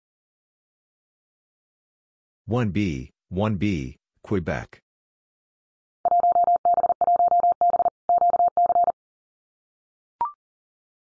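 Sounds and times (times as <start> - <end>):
morse code tone: 6.1 - 9.0.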